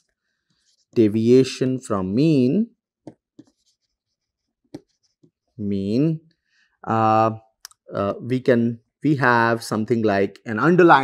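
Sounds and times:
stylus scratching on tablet: 0.0 - 1.6, 3.1 - 5.7
stylus tapping: 3.0 - 3.6, 4.6 - 5.4.

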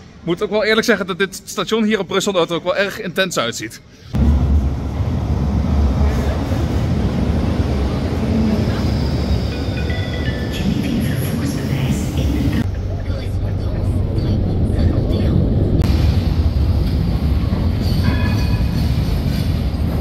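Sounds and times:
tram rumbling: 4.2 - 20.0.

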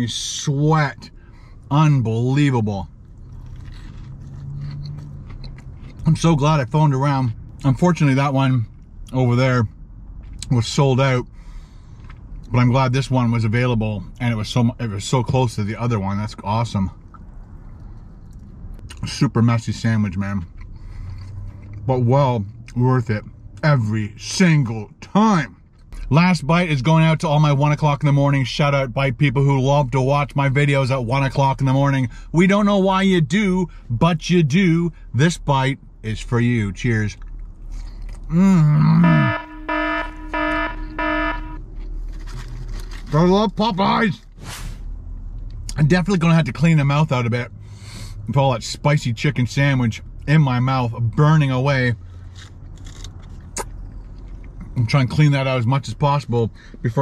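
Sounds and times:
biting and chewing food: 3.0 - 6.2, 37.2 - 38.3, 41.6 - 43.1, 52.3 - 54.7
steady low hum: 32.0 - 42.5
alarm beeping: 39.0 - 41.6.

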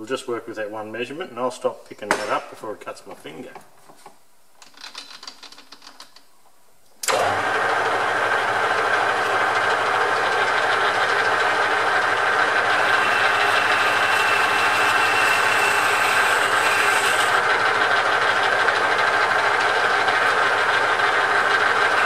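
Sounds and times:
metal lathe running: 7.1 - 22.0.

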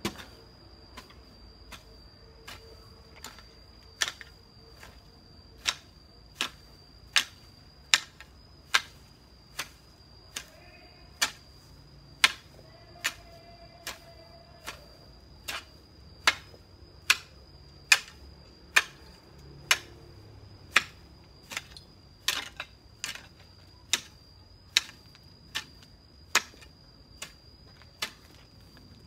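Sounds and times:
high-pitched whine: 0.0 - 29.0
hoe chopping into soil: 12.2 - 14.8, 15.4 - 17.3, 17.9 - 19.1, 20.7 - 27.4, 28.0 - 28.4.

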